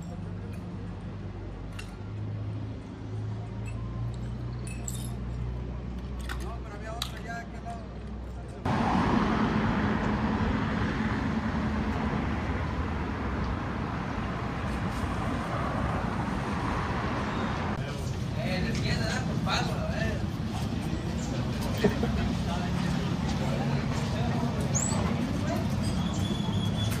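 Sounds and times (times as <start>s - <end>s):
traffic going by: 0.0s - 27.0s
faint clinks: 3.6s - 5.5s.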